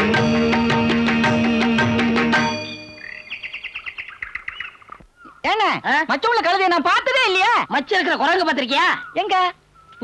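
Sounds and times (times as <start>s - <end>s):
small bird chirping: 2.7s - 5.5s, 7.8s - 10.0s.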